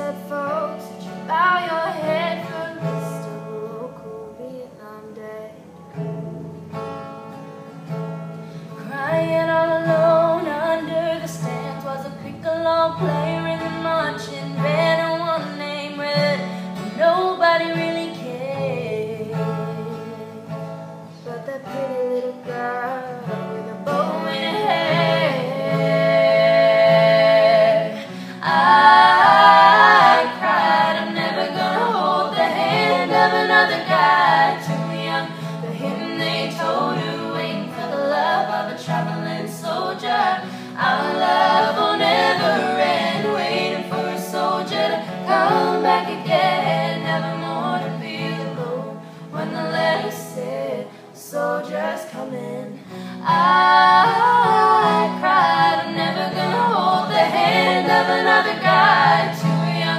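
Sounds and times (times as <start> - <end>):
voices singing in harmony: 0.0 - 5.7, 8.8 - 20.5, 21.3 - 59.9
strummed acoustic guitar: 0.0 - 59.9.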